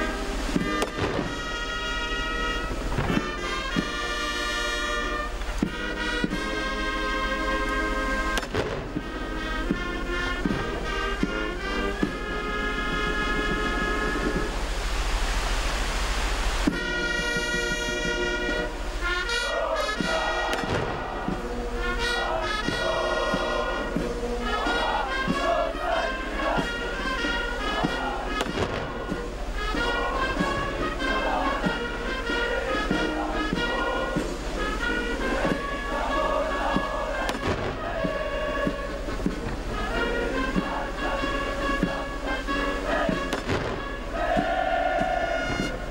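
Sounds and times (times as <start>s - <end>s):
hiss-like noise: 0.0s - 45.9s
military brass band playing: 0.0s - 45.9s.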